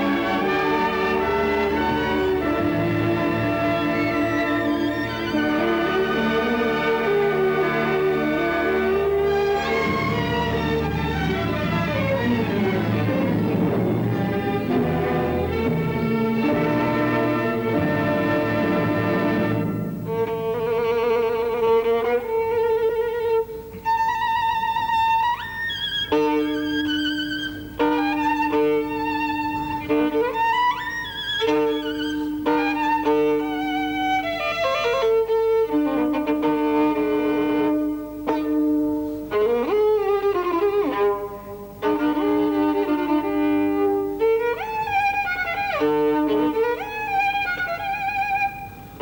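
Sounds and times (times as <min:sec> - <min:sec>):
solo violin playing: 0:00.0 - 0:49.0.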